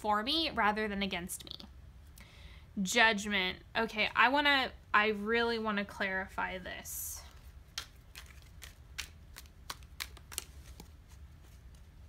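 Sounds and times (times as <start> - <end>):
cards being shuffled: 7.3 - 12.0.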